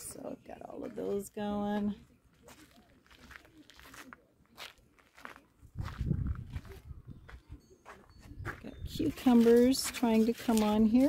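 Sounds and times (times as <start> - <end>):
footsteps: 0.8 - 11.0.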